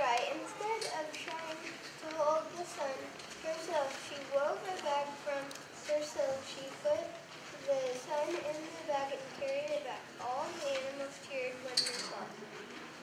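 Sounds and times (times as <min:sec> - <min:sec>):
child reading aloud: 0:00.0 - 0:12.0.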